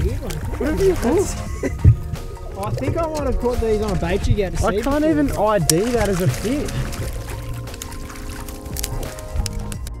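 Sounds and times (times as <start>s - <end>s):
background music: 0.0s - 10.0s
water splashing: 0.0s - 10.0s.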